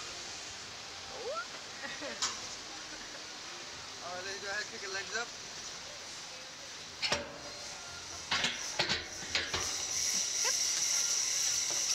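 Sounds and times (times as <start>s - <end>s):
steady high hiss: 0.0s - 11.9s.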